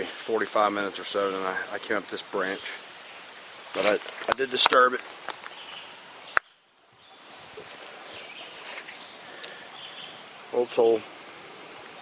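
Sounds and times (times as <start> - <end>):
steady even hiss: 0.0 - 12.0.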